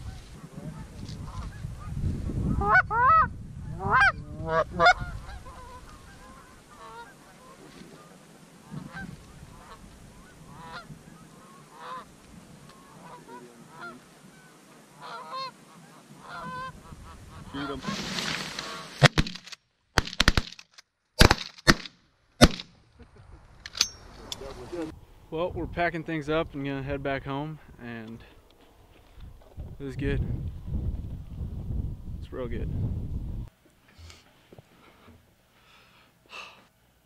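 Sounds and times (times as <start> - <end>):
goose honking: 2.6 - 12.1, 12.7 - 19.0
shotgun blasts: 19.0 - 20.6, 21.2 - 22.7.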